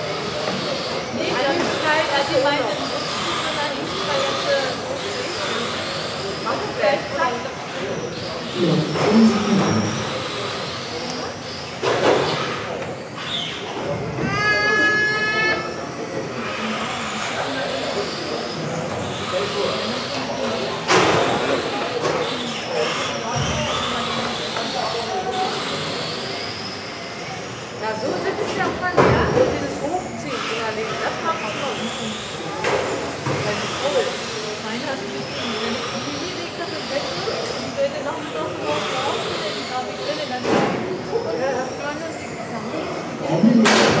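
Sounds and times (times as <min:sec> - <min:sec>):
rc car motors whining: 0:00.0 - 0:44.0.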